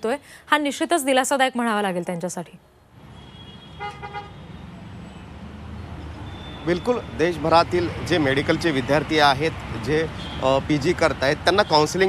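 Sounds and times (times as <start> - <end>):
road traffic rumble: 2.6 - 12.0
vehicle horn toot: 3.1 - 4.6.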